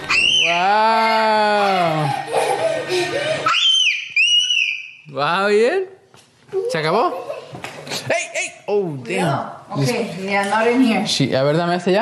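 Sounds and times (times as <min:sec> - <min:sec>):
child's high-pitched squeal: 0:00.0 - 0:02.1, 0:03.4 - 0:05.1.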